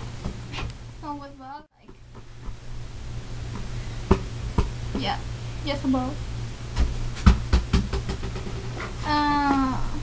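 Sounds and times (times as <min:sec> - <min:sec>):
steady low hum: 0:00.0 - 0:10.0
objects knocking and thumping: 0:06.7 - 0:09.0.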